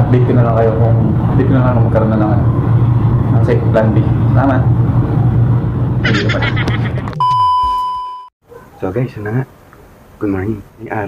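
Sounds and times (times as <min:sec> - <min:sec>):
man talking: 0:00.0 - 0:02.4, 0:10.2 - 0:11.0
electronic beep tone: 0:07.2 - 0:08.3.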